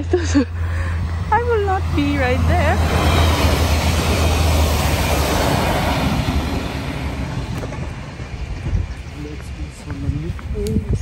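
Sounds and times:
train passing on rails: 0:00.0 - 0:11.0.

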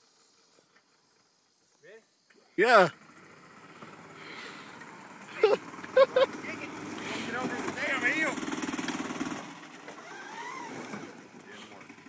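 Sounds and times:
golf cart engine under load: 0:02.8 - 0:12.0.

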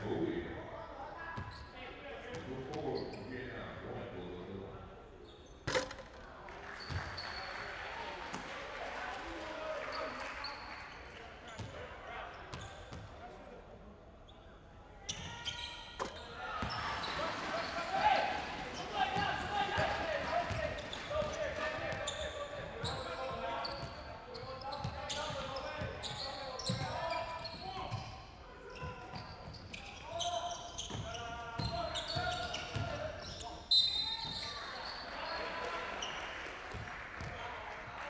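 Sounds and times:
voices echoing in large hall: 0:00.0 - 0:38.0.

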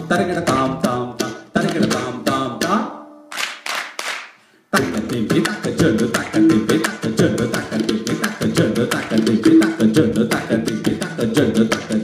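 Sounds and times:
tabla and ghatam drumming: 0:00.0 - 0:02.8, 0:04.8 - 0:12.0.

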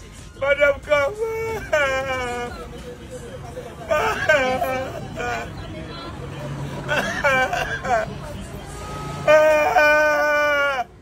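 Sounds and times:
man crying and wailing: 0:00.3 - 0:05.6, 0:06.7 - 0:08.3, 0:09.2 - 0:11.0.

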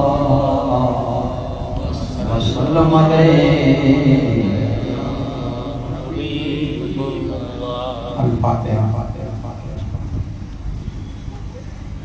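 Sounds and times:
man chanting through a microphone: 0:00.0 - 0:10.3.

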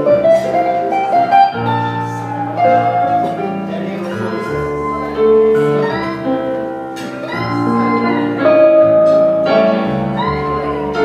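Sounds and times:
guitar playing: 0:00.0 - 0:11.0.

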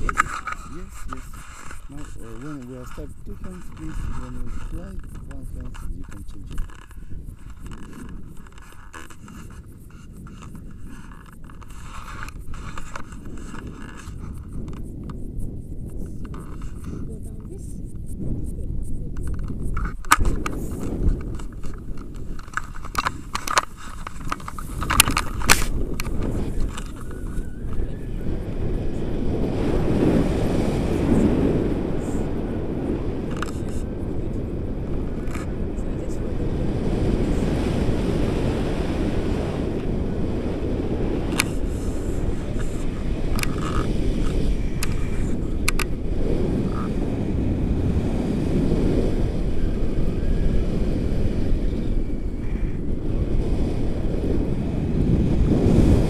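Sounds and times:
wind rushing over microphone: 0:00.0 - 0:56.0.

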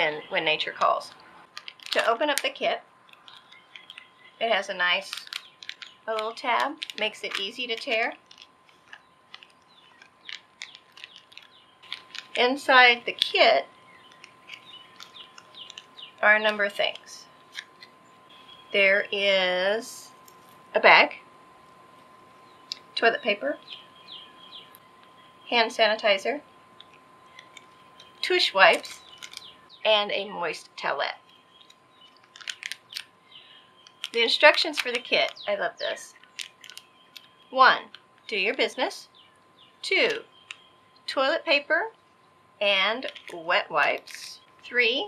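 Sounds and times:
plastic packet crinkling: 0:01.0 - 0:04.3, 0:04.9 - 0:18.0, 0:26.8 - 0:29.6, 0:31.2 - 0:38.1, 0:43.0 - 0:44.6.

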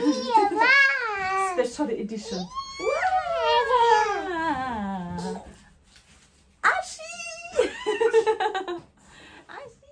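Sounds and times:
baby wailing: 0:02.3 - 0:04.4.

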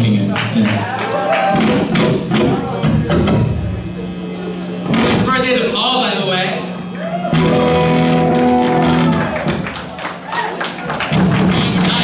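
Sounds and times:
electric guitar notes and strums: 0:01.5 - 0:09.8, 0:10.9 - 0:12.0.

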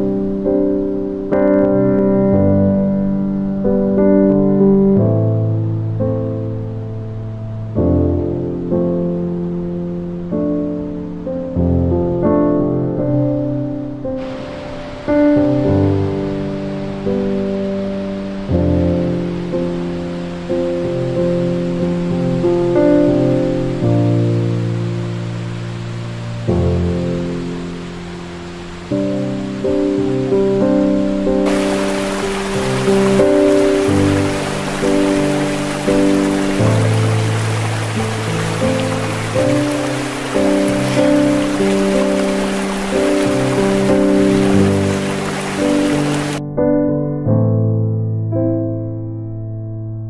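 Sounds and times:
running water hiss: 0:14.2 - 0:46.4
slow keyboard chords: 0:28.8 - 0:49.5.

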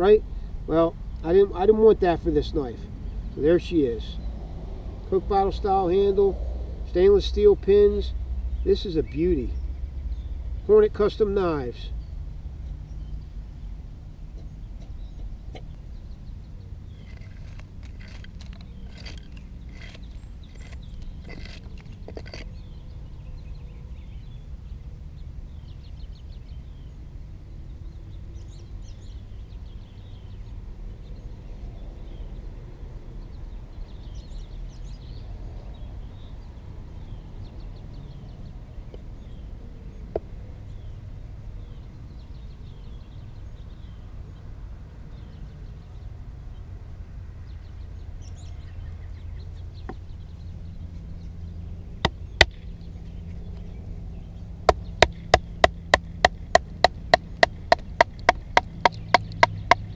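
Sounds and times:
birds chirping in trills: 0:06.9 - 0:32.4, 0:47.4 - 0:59.9.

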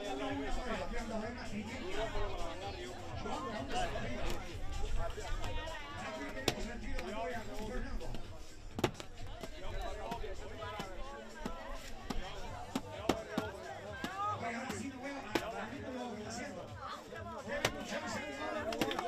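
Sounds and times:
crowd voices: 0:00.0 - 0:19.0
coconuts knocking on concrete: 0:08.1 - 0:15.6, 0:18.6 - 0:19.0.

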